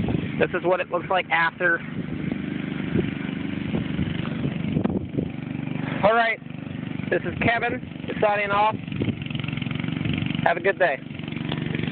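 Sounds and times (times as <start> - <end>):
lawn mower engine running: 0.0 - 11.9.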